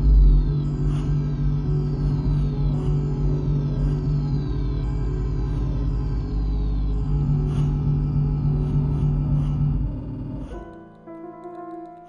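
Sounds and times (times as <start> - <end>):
dense low drone: 0.0 - 10.7.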